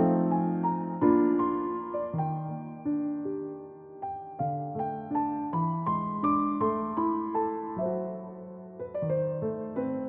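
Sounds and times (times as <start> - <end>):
slow solo piano notes: 0.0 - 10.0.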